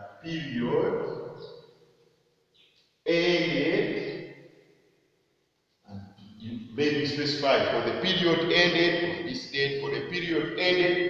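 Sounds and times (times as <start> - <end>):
man speaking: 0.0 - 1.4, 3.1 - 4.3, 5.9 - 11.0.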